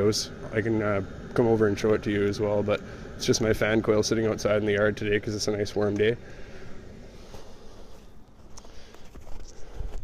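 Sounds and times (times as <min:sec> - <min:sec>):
low steady rumble: 0:00.0 - 0:10.0
footsteps in packed snow: 0:07.1 - 0:10.0.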